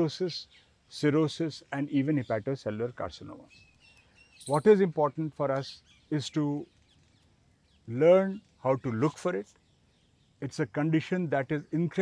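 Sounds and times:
man speaking: 1.0s - 3.5s, 4.5s - 6.6s, 7.9s - 9.5s, 10.4s - 12.0s.

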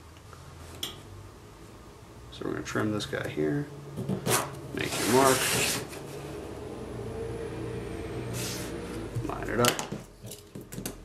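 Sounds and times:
pencil scraping on plastic sheet: 4.2s - 5.9s.

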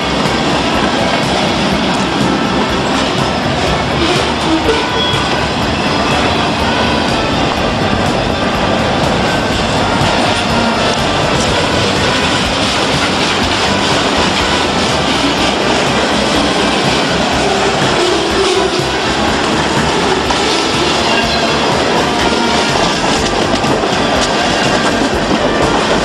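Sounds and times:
freight train wheels rumbling on rail: 0.0s - 26.0s.

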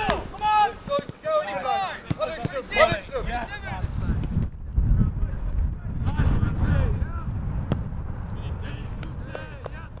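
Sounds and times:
players shouting and calling: 0.0s - 4.4s, 5.1s - 10.0s
football being kicked: 2.0s - 3.0s
wind rumble on microphone: 2.8s - 10.0s.

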